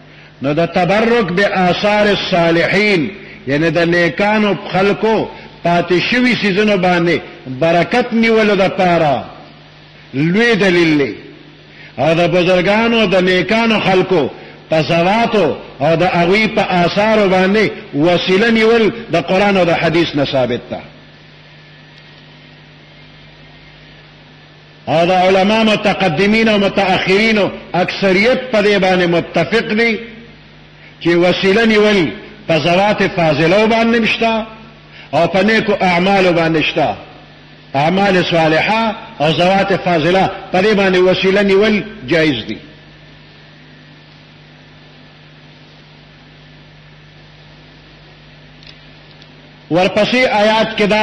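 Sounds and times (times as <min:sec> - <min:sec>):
electrical hum: 0:00.0 - 0:51.0
man speaking: 0:00.4 - 0:09.4, 0:10.2 - 0:11.4, 0:12.0 - 0:21.0, 0:24.8 - 0:30.3, 0:31.0 - 0:37.2, 0:37.8 - 0:42.7, 0:49.7 - 0:51.0.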